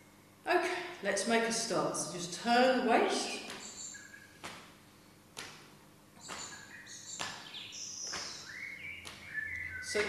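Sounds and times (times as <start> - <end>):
faint bird chirps: 3.2 - 4.4, 6.2 - 10.0.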